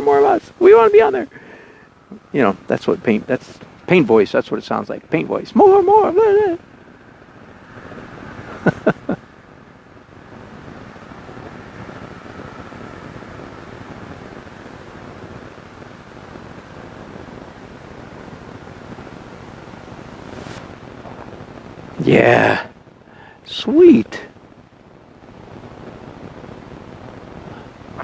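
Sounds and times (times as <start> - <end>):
wind on microphone: 18.8 - 22.0.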